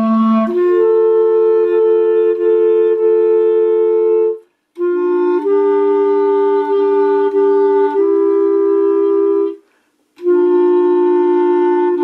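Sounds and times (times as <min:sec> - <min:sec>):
woodwind instrument playing: 0:00.0 - 0:12.0.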